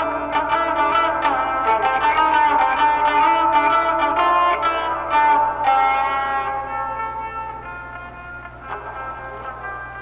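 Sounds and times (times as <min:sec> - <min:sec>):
electric guitar strummed chord: 0:00.0 - 0:10.0
picked guitar notes: 0:00.0 - 0:10.0.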